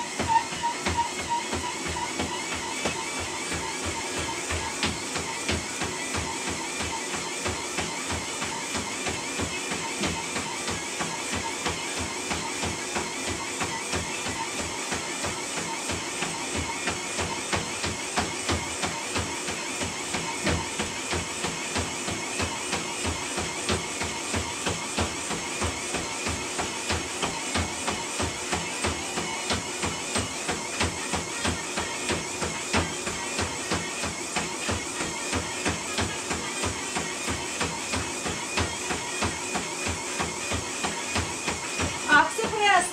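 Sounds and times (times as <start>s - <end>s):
running footfalls on treadmill: 0.0s - 42.9s
treadmill motor whine: 0.0s - 42.9s.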